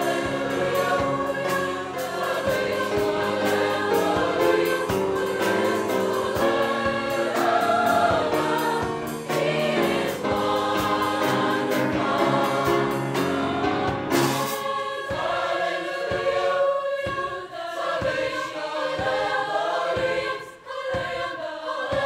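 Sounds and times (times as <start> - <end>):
mixed choir singing: 0.0 - 22.0
steady beat of sharp strokes: 0.0 - 22.0.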